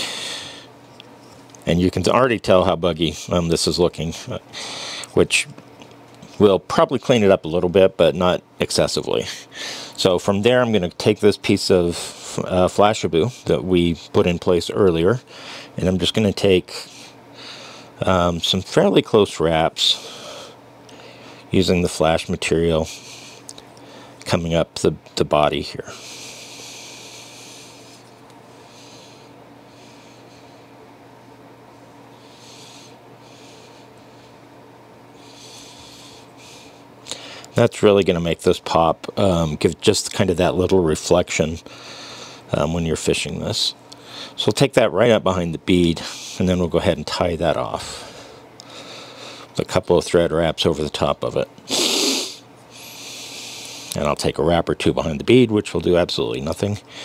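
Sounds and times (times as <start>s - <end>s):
loud breath close to microphone: 0.0s - 0.8s, 4.5s - 5.1s, 9.5s - 10.0s, 15.3s - 15.8s, 16.9s - 18.0s, 20.0s - 21.5s, 25.9s - 30.7s, 35.2s - 37.5s, 41.6s - 42.5s, 47.8s - 49.5s, 51.7s - 54.0s
low steady hum: 0.0s - 57.0s.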